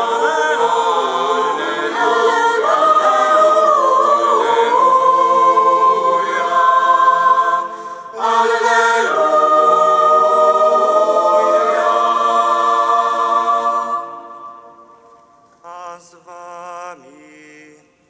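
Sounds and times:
choir singing chant: 0:00.0 - 0:17.9.

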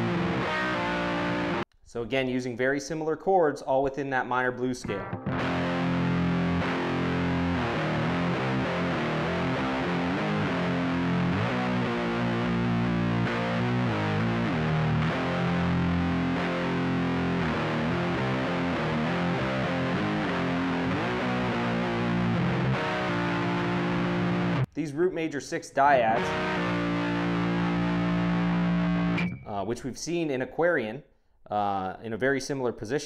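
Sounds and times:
distorted electric guitar riff: 0:00.0 - 0:01.6, 0:04.8 - 0:24.7, 0:25.9 - 0:29.6.

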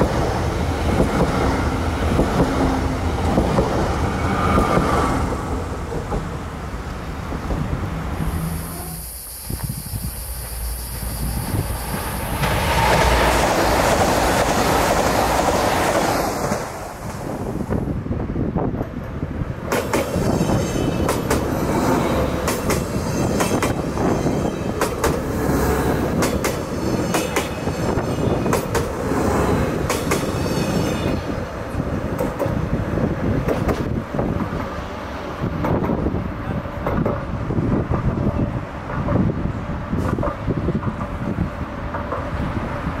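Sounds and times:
passenger train passing: 0:00.0 - 0:43.0.

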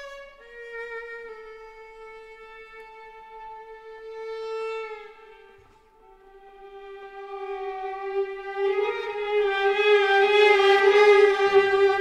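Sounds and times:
bowed violin tone: 0:00.0 - 0:12.0.

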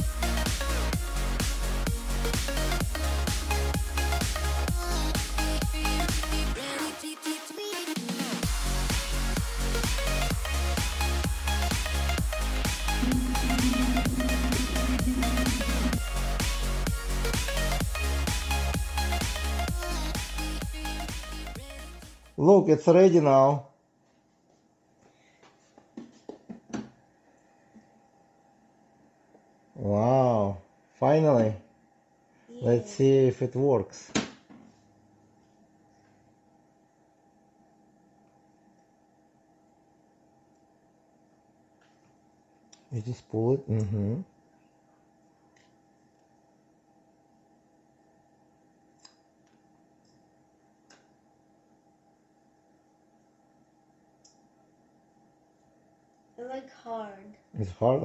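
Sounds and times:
steady low hum: 0:12.3 - 0:17.7.

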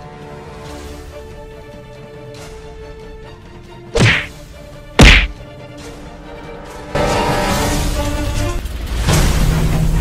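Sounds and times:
slap blows: 0:04.0 - 0:04.3, 0:05.0 - 0:05.4.

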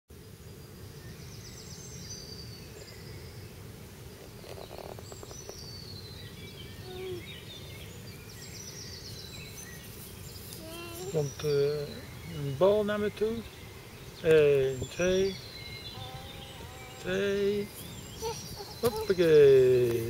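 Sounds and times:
songbirds singing: 0:00.1 - 0:20.0.

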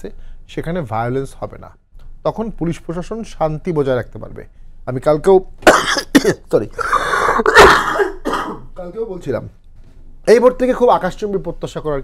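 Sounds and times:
man coughing and clearing throat: 0:05.6 - 0:08.8
man speaking: 0:10.2 - 0:12.0.

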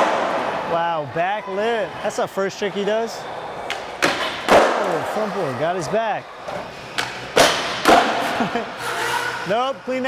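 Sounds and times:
skateboard impacts on concrete: 0:03.7 - 0:05.0.

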